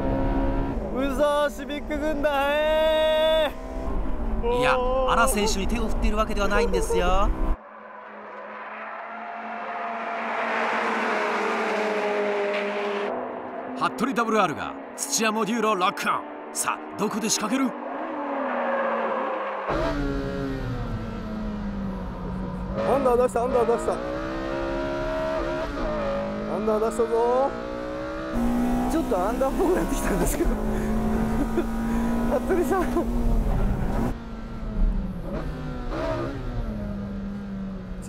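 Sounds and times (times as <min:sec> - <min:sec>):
race car engines running hard: 0:19.7 - 0:38.0.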